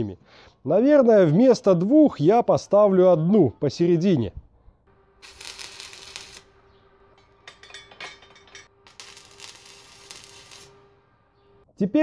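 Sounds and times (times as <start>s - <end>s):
welding arc crackling: 4.9s - 7.5s, 8.6s - 11.3s.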